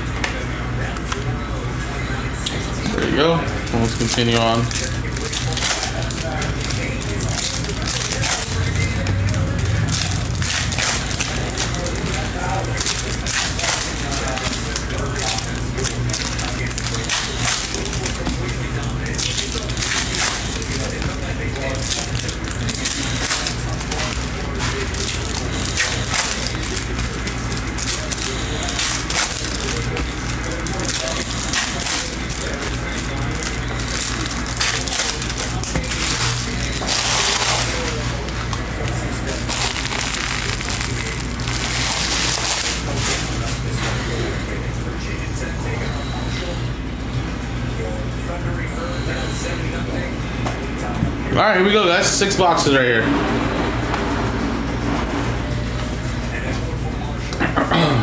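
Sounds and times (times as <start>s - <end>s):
foil wrappers crinkling and tearing: 3.4s - 44.7s.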